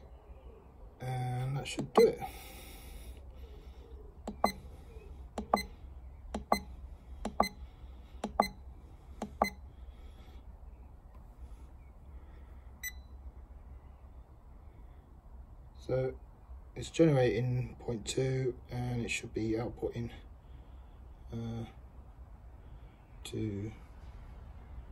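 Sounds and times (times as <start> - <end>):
low steady hum: 0.0 - 24.9
keypad button beeps: 1.8 - 2.3, 4.3 - 4.6, 5.4 - 5.7, 6.4 - 6.7, 7.3 - 7.6, 8.2 - 8.6, 9.2 - 9.6.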